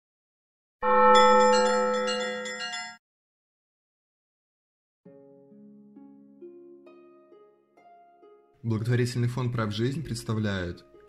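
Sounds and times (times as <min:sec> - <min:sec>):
bell-like chime chord: 0:00.8 - 0:03.0.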